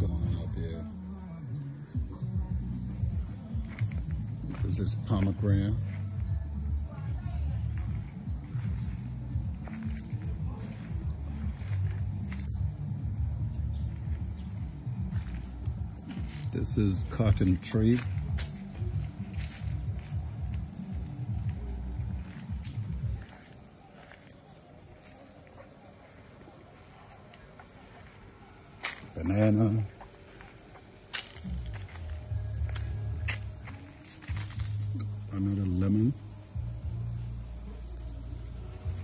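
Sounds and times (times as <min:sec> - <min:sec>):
crickets chirping: 0:00.0 - 0:39.0
insects trilling: 0:00.0 - 0:39.0.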